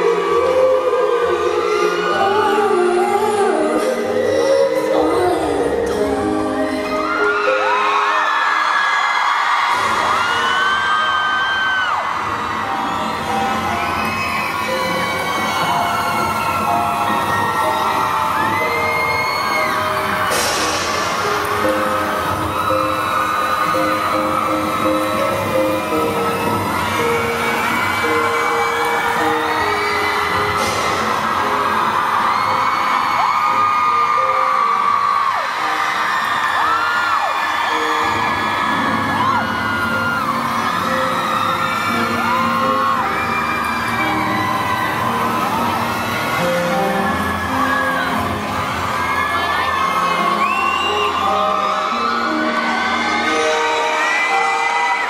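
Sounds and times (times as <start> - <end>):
audience screaming and whooping: 0.0 - 55.0
live pop ballad over loudspeakers: 0.0 - 55.0.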